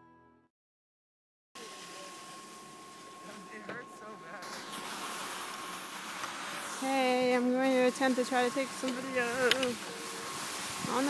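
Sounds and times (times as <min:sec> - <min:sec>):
skis hissing over snow: 0:01.6 - 0:11.0.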